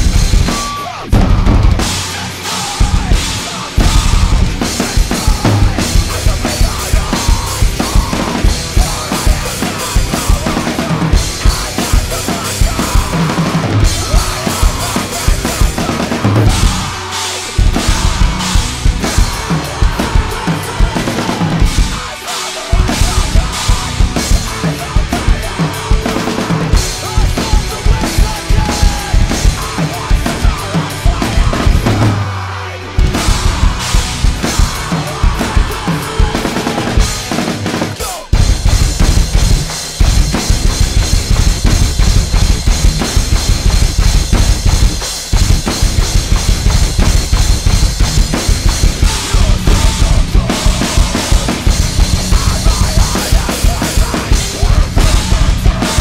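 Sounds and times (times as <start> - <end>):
fast bass drum strikes: 0.0 - 32.4, 33.0 - 56.0
drum kit played hard: 0.0 - 56.0
metal band recording: 0.0 - 56.0.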